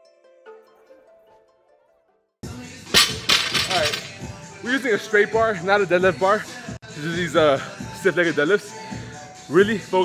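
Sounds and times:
man's voice: 2.6 - 10.0
echoing gym noise: 2.9 - 4.3
weight plates clanking: 3.0 - 4.2.

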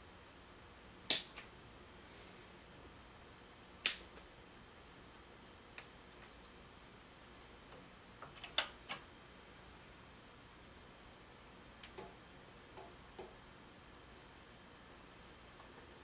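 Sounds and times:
switch clicks: 1.1 - 1.5, 3.8 - 4.2, 11.8 - 12.2.

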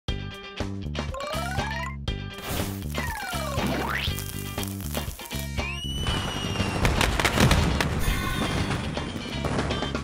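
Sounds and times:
crackling firecracker bangs: 4.9 - 10.0
whistling rocket: 5.5 - 7.3.

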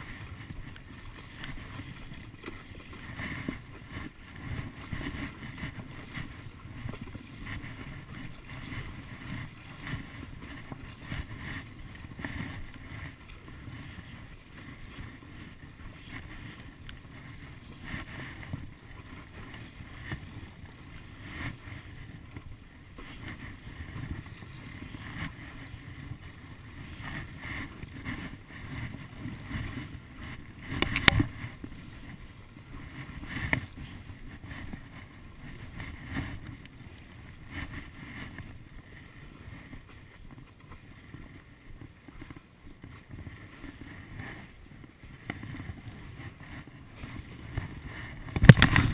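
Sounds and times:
paddle strokes splashing: 0.0 - 48.9
water sloshing at board: 0.0 - 48.9
wind rumble on microphone: 0.0 - 48.9.

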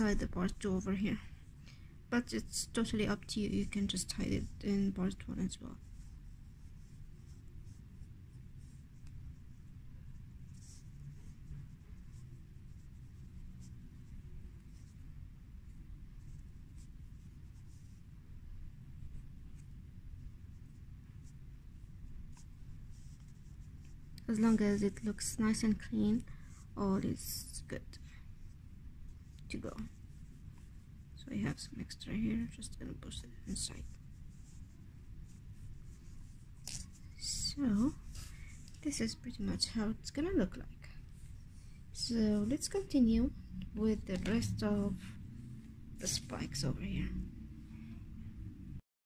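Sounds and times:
low background rumble: 0.0 - 48.8
crochet hook and yarn scratching: 2.3 - 18.1, 20.4 - 27.8, 29.2 - 47.2.

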